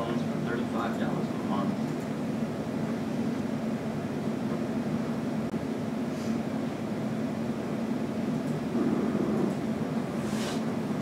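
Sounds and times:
ventilation fan hum: 0.0s - 11.0s.

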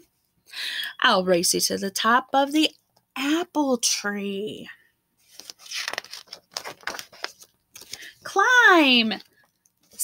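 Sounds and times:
paper page rustling and flapping: 5.2s - 8.2s
paper crackles: 5.2s - 8.4s.

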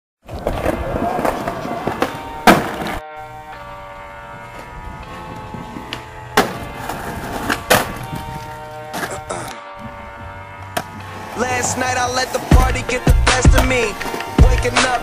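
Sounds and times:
skateboard rolling on concrete: 0.2s - 15.0s
skateboard sharp crack: 0.3s - 3.1s, 5.4s - 9.6s, 10.6s - 15.0s
music with sustained chords: 2.1s - 15.0s.

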